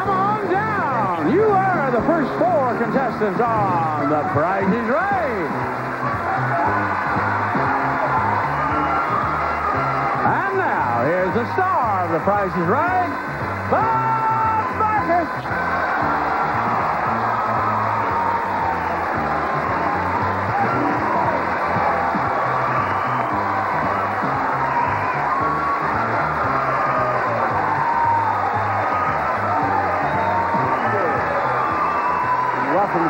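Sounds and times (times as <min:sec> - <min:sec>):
audience cheering and applauding: 0:00.0 - 0:33.0
game show theme music: 0:00.0 - 0:33.0.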